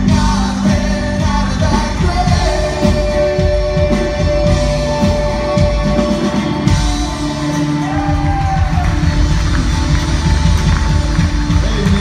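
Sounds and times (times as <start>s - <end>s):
church band playing: 0.0s - 12.0s
drum kit: 0.0s - 12.0s.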